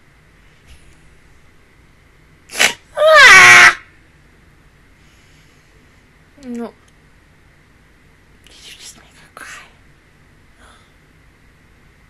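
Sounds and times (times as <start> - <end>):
person crying out: 2.6 - 3.8.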